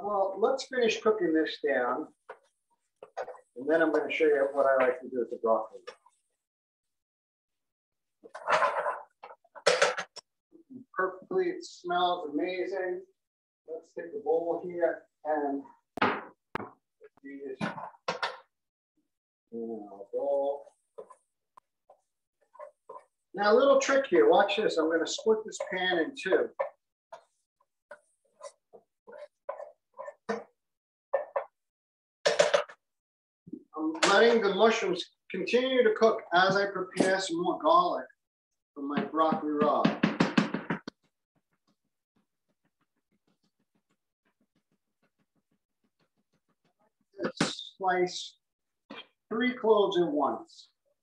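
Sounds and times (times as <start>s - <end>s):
spatula scraping frying pan: 22.4s - 23.2s, 26.6s - 30.5s.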